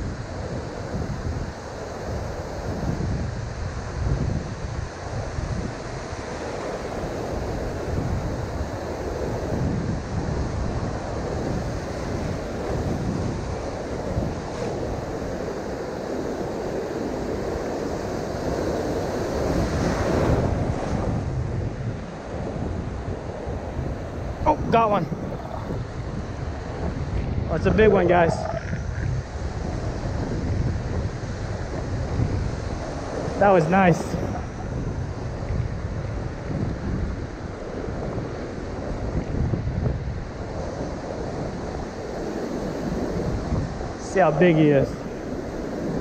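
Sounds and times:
wind buffeting microphone: 0.0s - 46.0s
ocean surf breaking: 10.6s - 39.5s.

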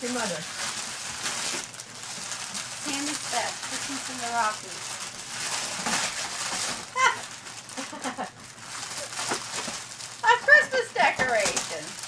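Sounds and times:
wrapping paper crinkling and tearing: 0.0s - 12.0s.

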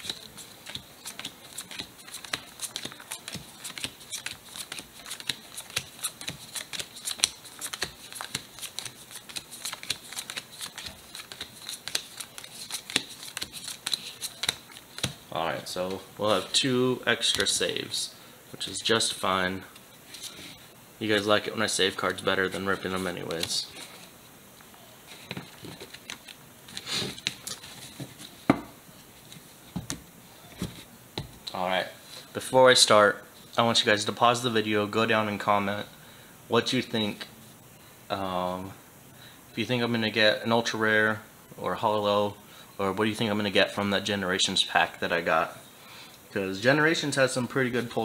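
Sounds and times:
cards flicking and slapping: 0.0s - 15.2s, 25.3s - 28.1s.

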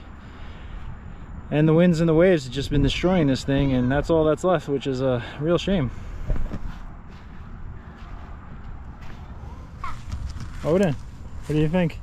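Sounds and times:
wind rumble on microphone: 0.0s - 4.7s, 5.6s - 12.0s.

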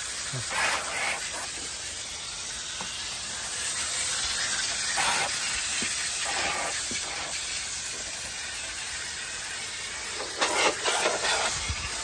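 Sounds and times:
hose water jets hissing: 0.0s - 12.0s.

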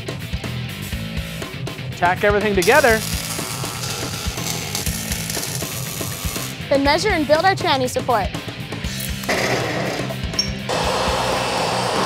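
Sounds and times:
background music with beat: 0.0s - 11.4s
welder arc crackling and hissing: 2.6s - 6.6s.

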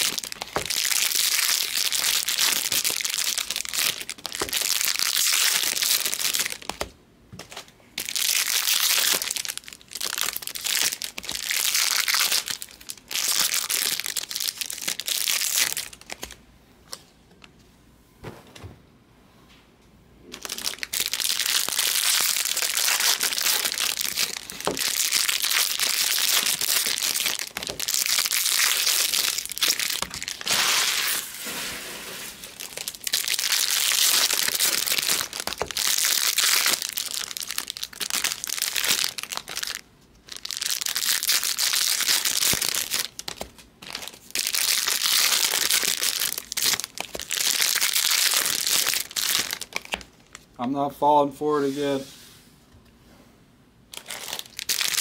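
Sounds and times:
foil wrappers tearing and crinkling: 0.0s - 6.8s, 8.0s - 16.4s, 20.3s - 50.5s, 53.9s - 55.0s.

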